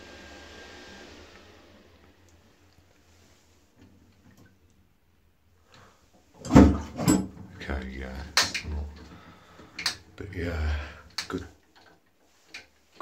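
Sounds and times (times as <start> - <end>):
water rushing into toilet pan: 6.4 - 7.6
toilet cistern flushing: 6.4 - 11.8.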